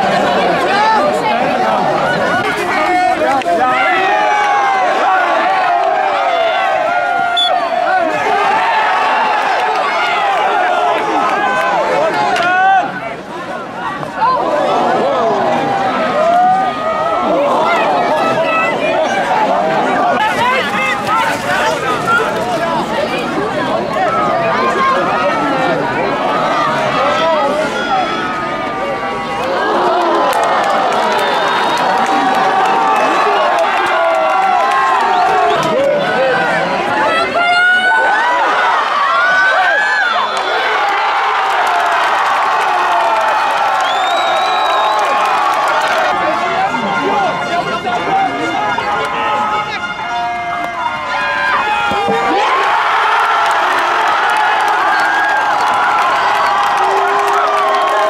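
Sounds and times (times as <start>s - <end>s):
crowd shouting and cheering: 0.0s - 58.0s.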